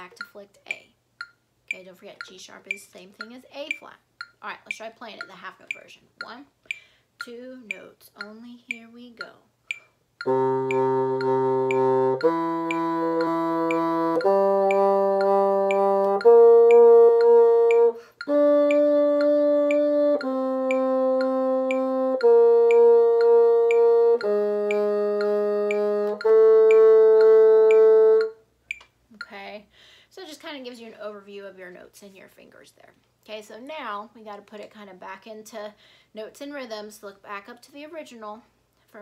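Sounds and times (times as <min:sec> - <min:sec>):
metronome clicks: 0:00.0 - 0:29.4
bassoon playing sustained notes: 0:10.2 - 0:28.4.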